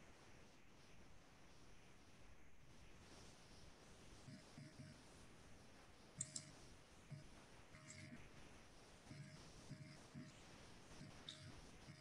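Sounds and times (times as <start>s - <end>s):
sharp clicks: 6.2s - 6.6s.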